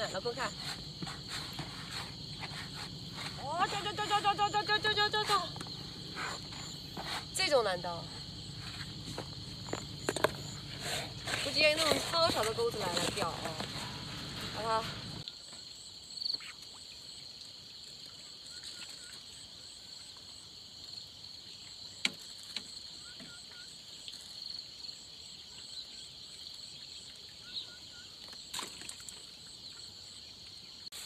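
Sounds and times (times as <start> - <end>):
insects chirping chorus: 0.0 - 31.0.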